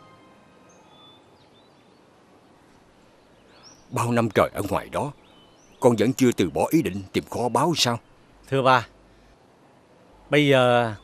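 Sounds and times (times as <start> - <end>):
faint background ambience: 0.0 - 11.0.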